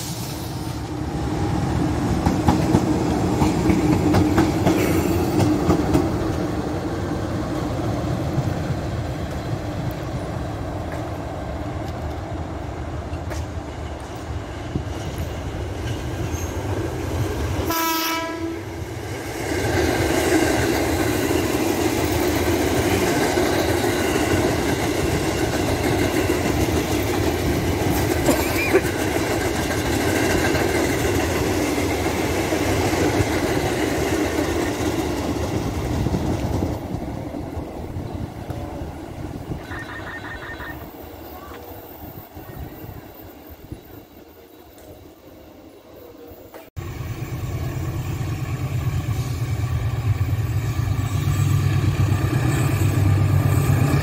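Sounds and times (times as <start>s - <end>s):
diesel locomotive engine drone: 0.0s - 54.0s
electric train rumble and hum: 0.0s - 54.0s
train horn blast: 17.6s - 18.7s.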